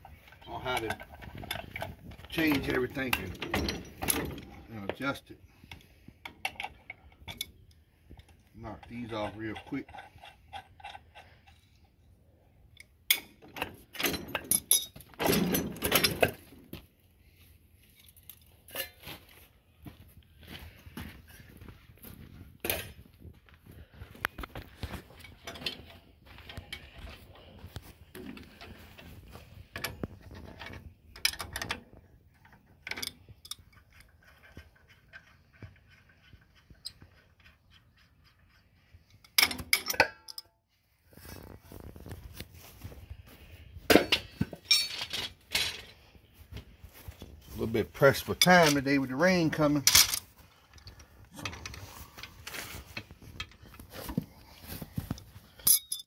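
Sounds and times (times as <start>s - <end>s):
metal clanks: 0.0s - 5.0s, 13.1s - 16.5s, 39.1s - 40.5s, 43.9s - 46.0s
wrench and metal hardware clinking: 0.0s - 5.1s, 12.7s - 16.6s, 17.9s - 19.0s, 29.7s - 38.5s, 39.1s - 40.5s, 43.9s - 46.0s, 47.9s - 53.7s, 54.7s - 56.0s.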